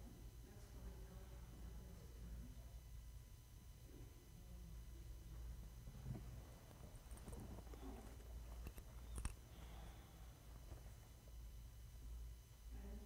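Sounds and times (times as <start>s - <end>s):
low steady hum: 0.0s - 13.0s
faint rustling: 5.8s - 11.4s.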